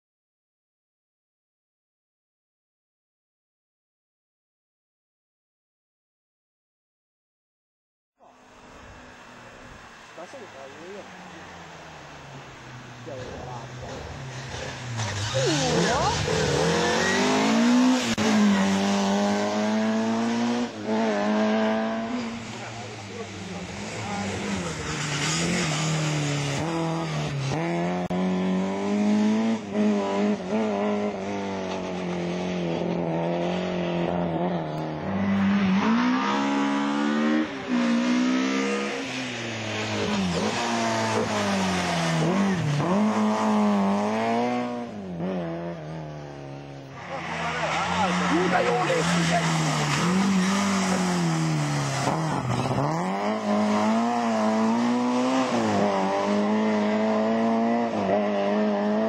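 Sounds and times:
car engine revving hard: 13.1s - 59.0s.

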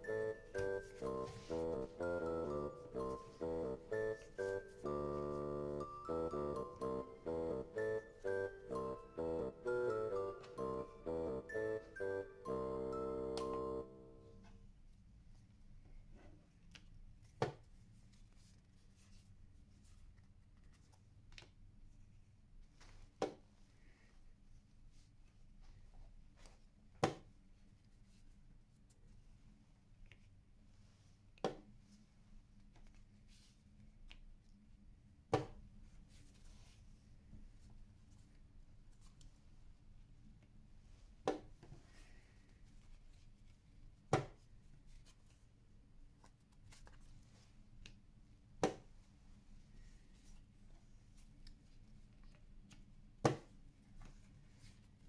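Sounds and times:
chess clock button click: 13.1s - 13.8s.

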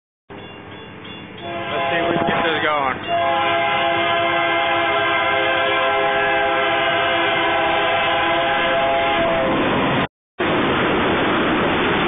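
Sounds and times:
train horn chord: 1.4s - 9.5s.

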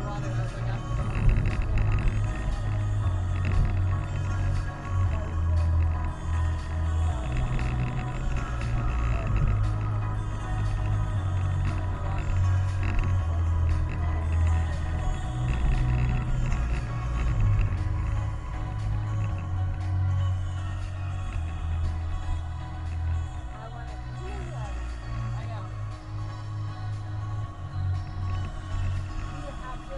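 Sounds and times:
music on car stereo: 0.0s - 29.9s.

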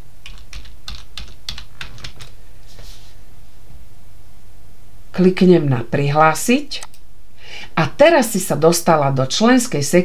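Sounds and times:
computer keyboard typing: 0.2s - 2.4s.

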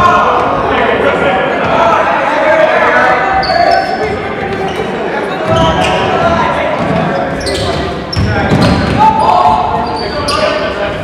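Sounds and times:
voices of players and spectators: 0.0s - 11.0s
sneakers squeaking: 3.1s - 11.0s.

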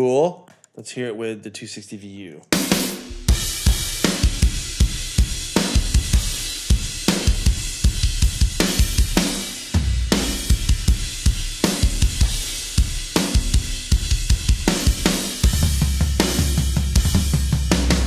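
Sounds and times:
rapid kick drum hits: 2.6s - 18.0s.

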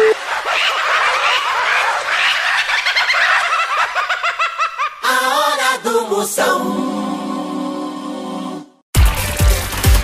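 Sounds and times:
chorus of chirping animal calls: 0.0s - 5.0s.

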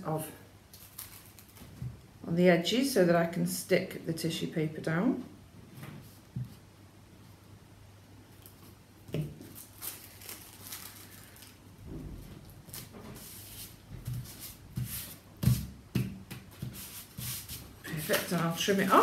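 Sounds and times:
paper rustling: 9.4s - 11.6s, 16.6s - 19.0s.

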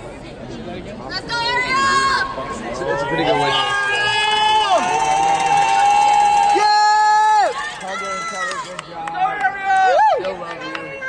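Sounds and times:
crowd chatter: 0.0s - 11.0s
spectators shouting calls of support: 1.1s - 11.0s.

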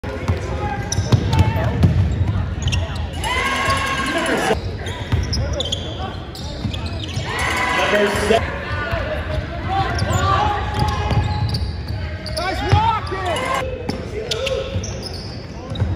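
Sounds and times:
basketball bouncing on hardwood: 1.0s - 2.4s.

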